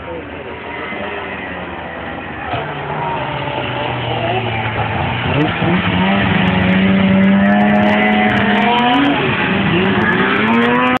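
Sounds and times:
snowmobile engine revving: 1.6 - 11.0.

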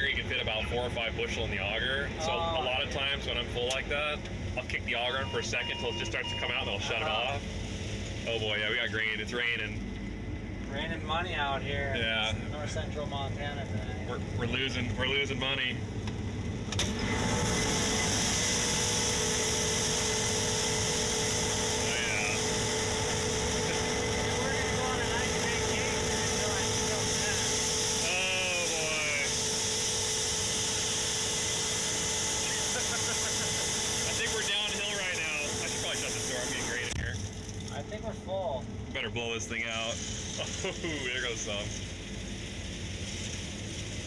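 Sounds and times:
whining tones: 0.0 - 37.9
combine harvester drone in cab: 0.0 - 44.0.

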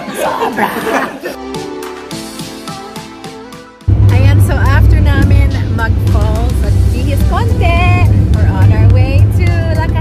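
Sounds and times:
van road and engine rumble: 3.9 - 10.0.

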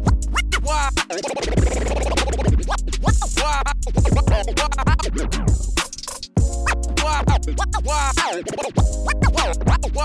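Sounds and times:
hip-hop beat with heavy bass: 0.0 - 10.0
turntable scratching: 0.0 - 10.0.

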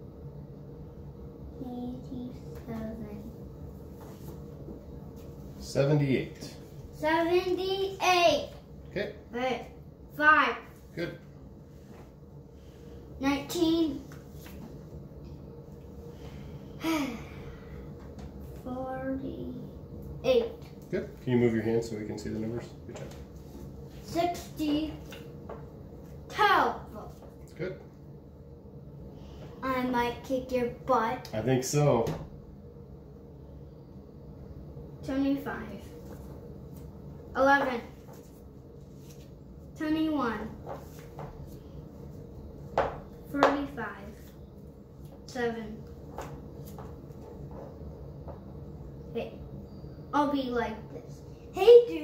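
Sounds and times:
faint low room hum: 0.0 - 52.0.

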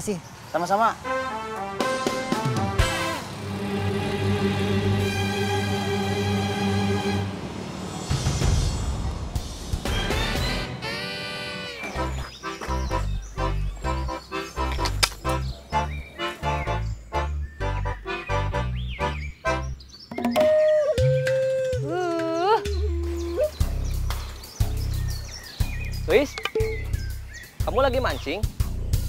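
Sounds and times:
bouncy comic tune with walking bass: 9.9 - 24.1.

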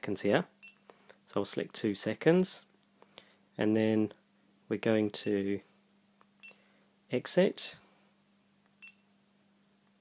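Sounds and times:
short electronic beep: 8.8 - 9.1.

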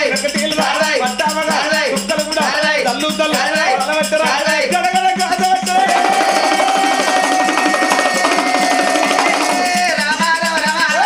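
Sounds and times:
fast hand percussion: 0.0 - 11.0.

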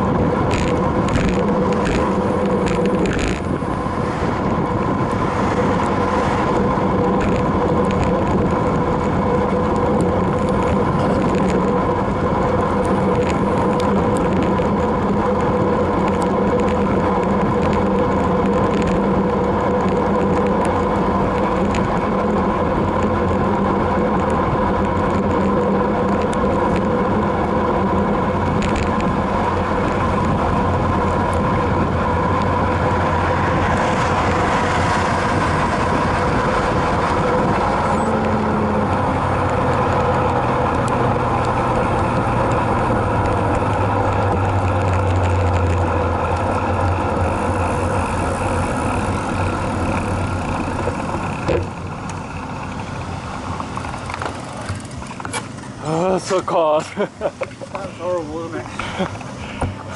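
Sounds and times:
bicycle rushing noise and hum: 0.0 - 59.9.

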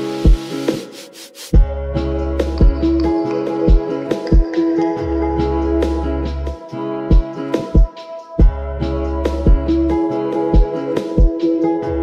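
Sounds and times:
hissing noise swish: 0.0 - 1.6
lofi hip hop beat: 0.0 - 12.0.

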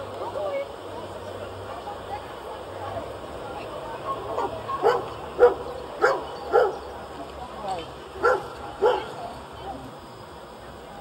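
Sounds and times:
dog barking: 4.4 - 6.8, 8.2 - 9.1.

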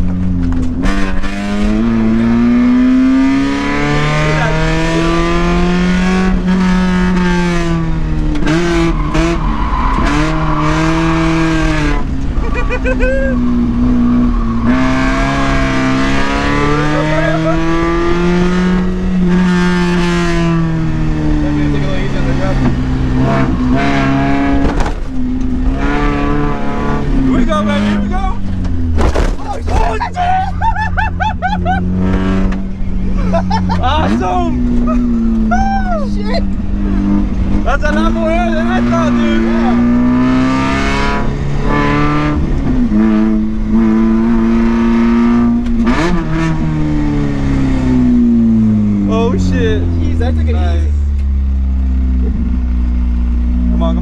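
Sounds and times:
car engine revving: 0.0 - 54.0.

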